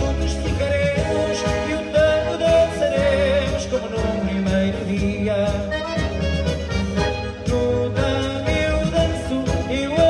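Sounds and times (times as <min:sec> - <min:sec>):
accordion-led tango band: 0:00.0 - 0:10.0.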